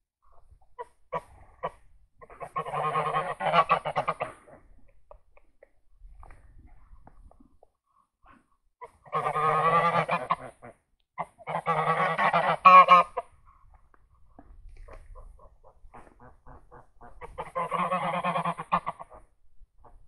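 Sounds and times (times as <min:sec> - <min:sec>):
geese honking: 0:02.4 - 0:04.3, 0:08.8 - 0:13.3, 0:16.0 - 0:19.2.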